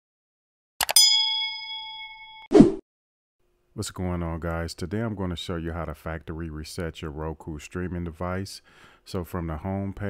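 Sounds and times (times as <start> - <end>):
bell ding: 0.8 - 2.5.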